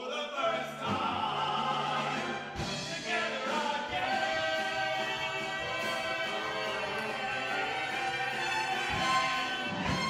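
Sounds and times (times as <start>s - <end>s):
men singing: 0.0s - 10.0s
orchestra accompaniment: 0.8s - 10.0s.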